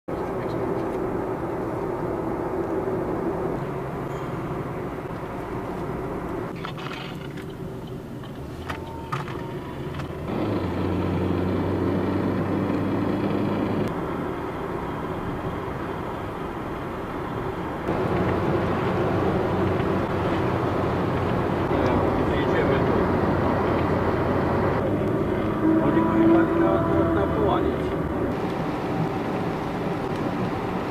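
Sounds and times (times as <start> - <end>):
car engine hum: 0.1 - 30.9
tyre and road noise: 0.1 - 30.9.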